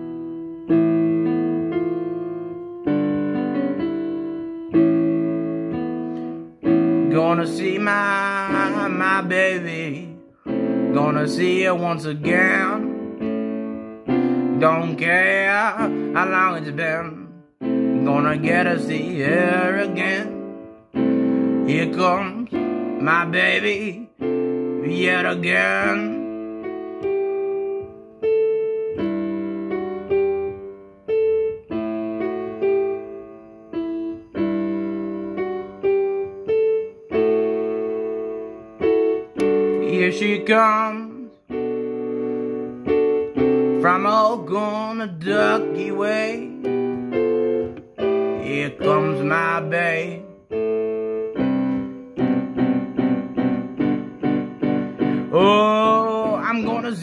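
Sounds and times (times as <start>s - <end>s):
slow piano chords: 0.0s - 57.0s.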